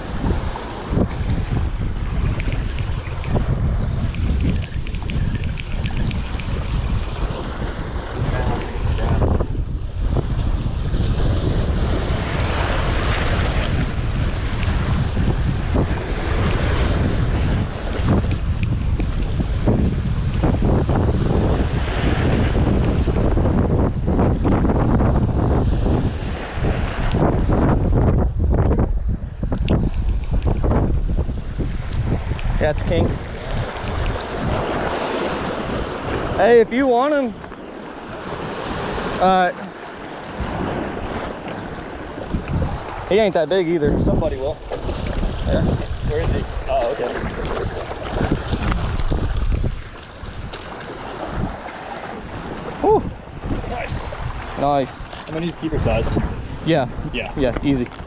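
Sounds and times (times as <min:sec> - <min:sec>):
surf washing against rocks: 0:00.0 - 0:58.0
wind buffeting microphone: 0:00.0 - 0:58.0.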